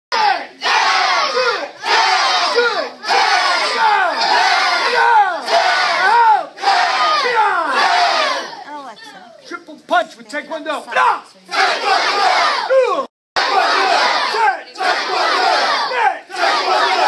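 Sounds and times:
group shouting in unison: 0:00.1 - 0:08.6, 0:10.9 - 0:17.0.

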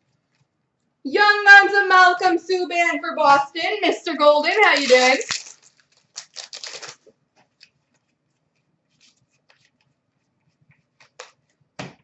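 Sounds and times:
trading cards flicking and sliding: 0:10.7 - 0:11.6.

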